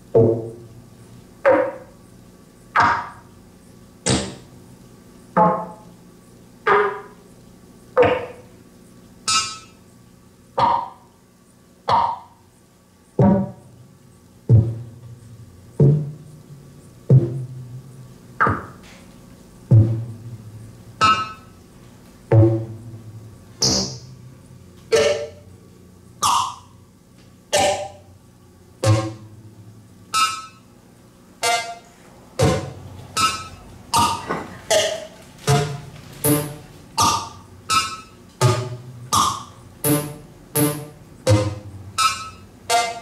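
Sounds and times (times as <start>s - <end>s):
synthesizer percussive notes: 19.7s - 21.5s, 22.3s - 24.2s, 24.9s - 25.5s, 26.2s - 26.8s, 27.5s - 28.1s, 28.8s - 29.5s, 31.4s - 43.0s.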